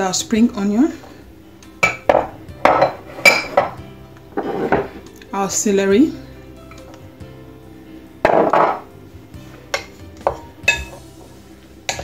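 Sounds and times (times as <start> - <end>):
kitchen bowls clattering: 1.8 - 3.8, 4.4 - 5.0, 8.3 - 8.9.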